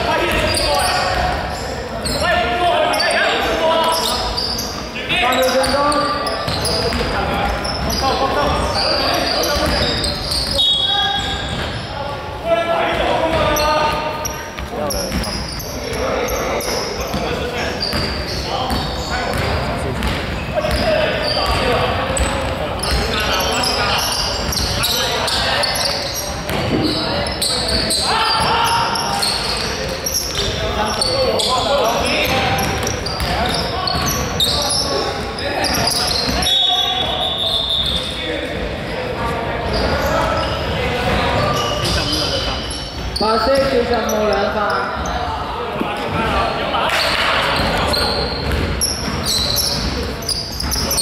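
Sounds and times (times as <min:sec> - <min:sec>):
players calling out: 0:00.0 - 0:51.0
sports hall din: 0:00.0 - 0:51.0
basketball bouncing on wooden court: 0:09.4 - 0:10.6, 0:17.1 - 0:23.2, 0:26.4 - 0:28.8, 0:32.2 - 0:34.6, 0:47.6 - 0:51.0.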